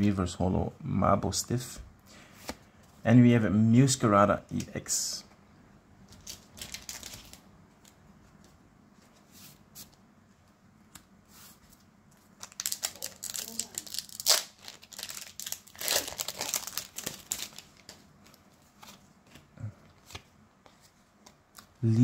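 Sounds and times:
foil wrapper crinkling and tearing: 6.2 - 7.4, 12.4 - 18.0.

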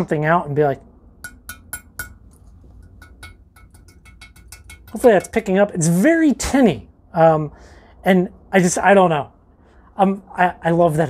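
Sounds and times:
metal tool clinking on rock: 1.2 - 5.6.

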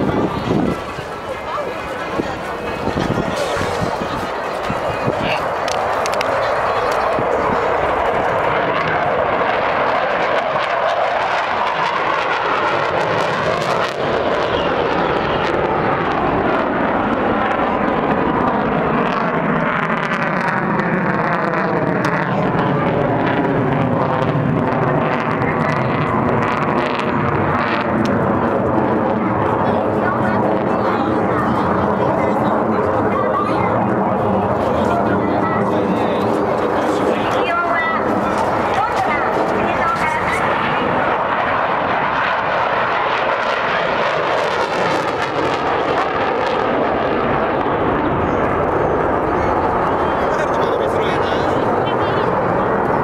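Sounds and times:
jet flying overhead: 0.0 - 53.0.

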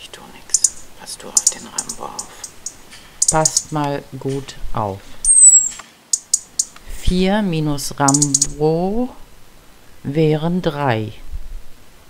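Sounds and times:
bird short high chirps: 5.3 - 6.7, 8.1 - 8.5
bird high thin call: 5.3 - 6.8.

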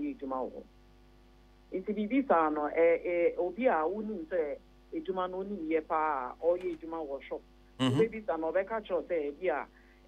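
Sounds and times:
electrical hum on phone line: 0.0 - 10.0
woman speaking over telephone: 1.8 - 7.4.

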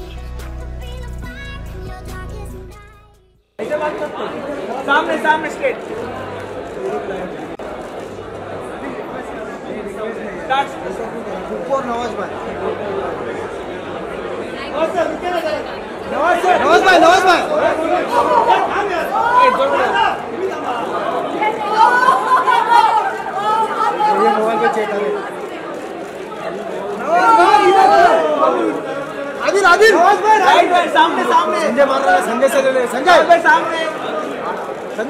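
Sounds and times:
people chattering: 3.6 - 35.0.

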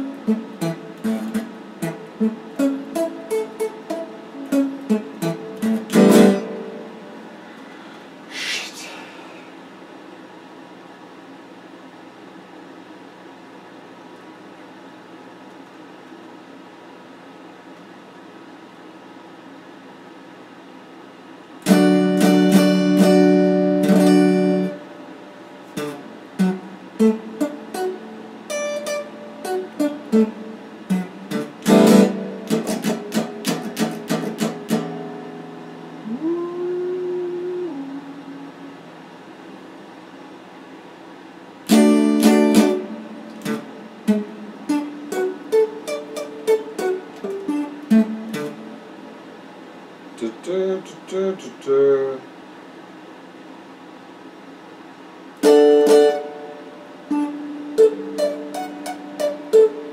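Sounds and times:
electric guitar picked notes: 0.0 - 7.4, 21.6 - 39.1, 41.7 - 49.2, 55.4 - 59.9
electric guitar strummed chords: 0.0 - 7.5, 21.6 - 39.0, 41.6 - 49.3, 55.4 - 59.9
steady hiss: 0.0 - 10.7.

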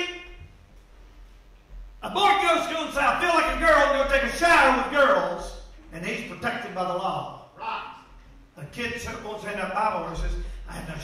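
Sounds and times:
man preaching in echoing room: 0.0 - 0.6, 2.0 - 11.0.

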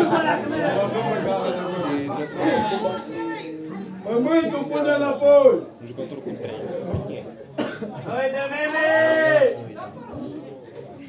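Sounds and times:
murmur of spectators: 0.0 - 11.0
cough close to microphone: 7.6 - 8.0.

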